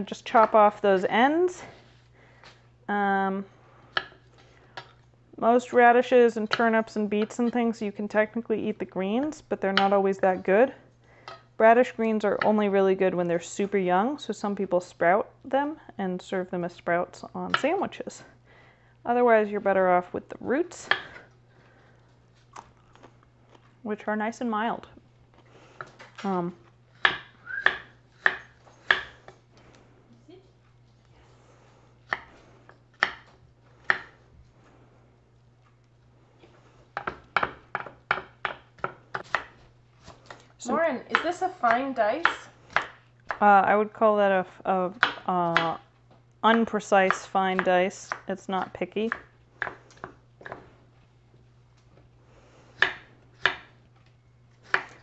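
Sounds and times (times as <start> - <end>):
knife chopping on wooden board: 27.0 - 29.2, 32.1 - 32.3, 32.9 - 34.2, 37.0 - 39.6, 41.1 - 43.4, 52.8 - 53.7, 54.6 - 55.0.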